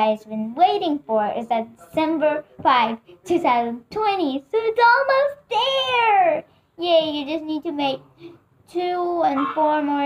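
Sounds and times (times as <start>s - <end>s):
girl speaking: 0.0s - 8.1s, 8.7s - 10.0s.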